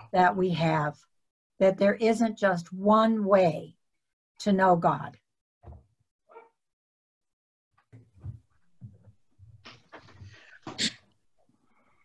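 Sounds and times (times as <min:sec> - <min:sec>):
person sneezing: 0:10.6 - 0:11.0.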